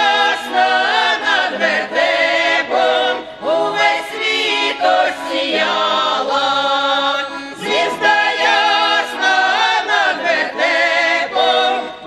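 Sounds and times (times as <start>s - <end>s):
women's choir singing a carol: 0.0s - 12.0s.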